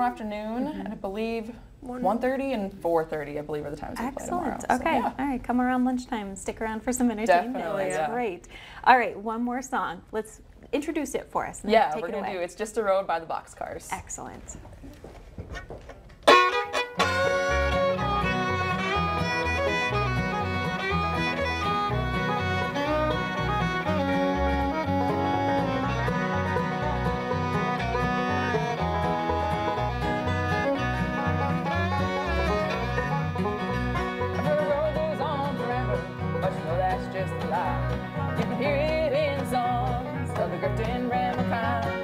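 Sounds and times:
bluegrass band playing: 0:16.2 - 0:42.0.

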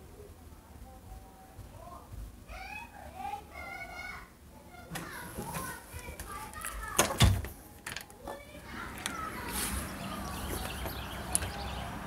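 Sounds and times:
narration: 0:00.0 - 0:12.0
people talking: 0:00.0 - 0:12.0
child's voice: 0:01.8 - 0:07.2, 0:08.1 - 0:10.8.

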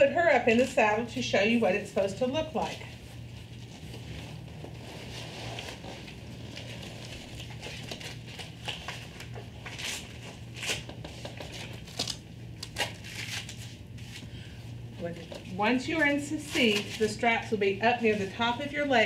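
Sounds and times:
steady low hum: 0:00.0 - 0:19.0
velcro straps ripping: 0:04.8 - 0:14.2.

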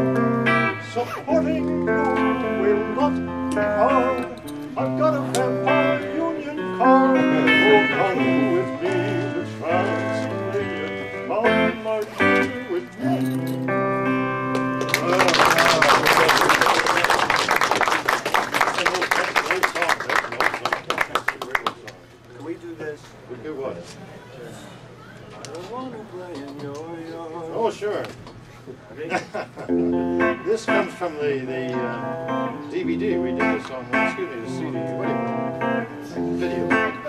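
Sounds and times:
electric guitar playing: 0:00.0 - 0:16.9, 0:29.7 - 0:37.0
man singing: 0:00.8 - 0:13.5, 0:30.7 - 0:37.0
audience clapping: 0:14.5 - 0:22.0.

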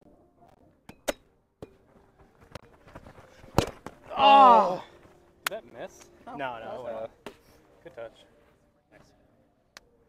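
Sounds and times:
ball bouncing off net: 0:03.4 - 0:04.0.

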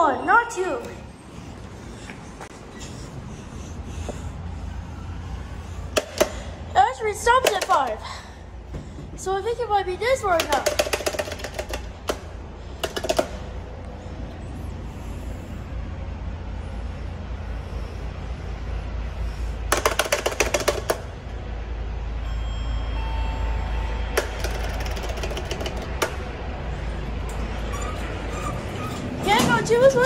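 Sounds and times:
steady low rumble: 0:13.4 - 0:19.7, 0:25.9 - 0:30.0
short steady tone: 0:22.2 - 0:24.2.

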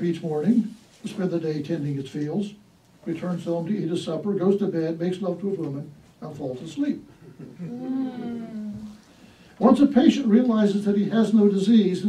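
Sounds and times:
person laughing softly: 0:07.2 - 0:08.8.

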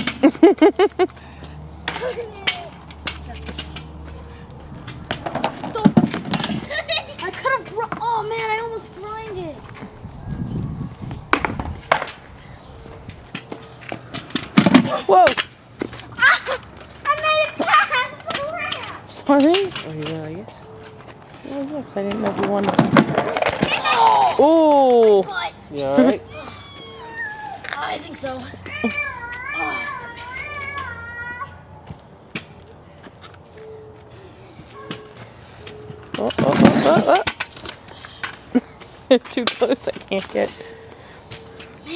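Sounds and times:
skateboard clacking on concrete: 0:01.8 - 0:06.7, 0:11.3 - 0:12.3, 0:21.0 - 0:25.4
children's voices: 0:01.9 - 0:04.7, 0:06.6 - 0:09.8, 0:16.1 - 0:19.1, 0:23.5 - 0:24.6, 0:25.2 - 0:31.7.

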